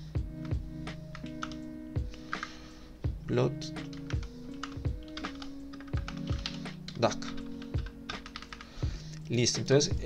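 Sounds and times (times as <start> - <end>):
background music: 0.0 - 10.0
keyboard typing: 0.4 - 2.5, 3.8 - 8.7.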